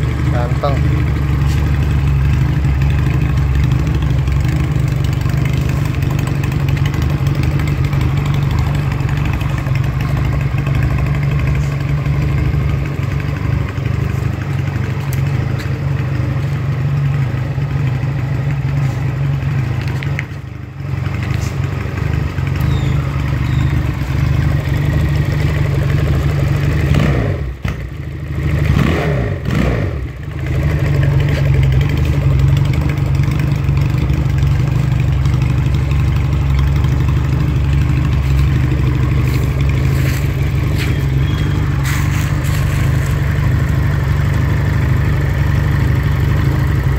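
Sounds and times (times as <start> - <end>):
motorcycle engine idling: 0.0 - 46.9.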